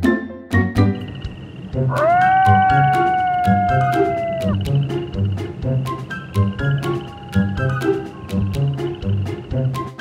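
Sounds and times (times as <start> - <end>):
children's background music: 0.0 - 10.0
wolf howl: 1.9 - 4.6.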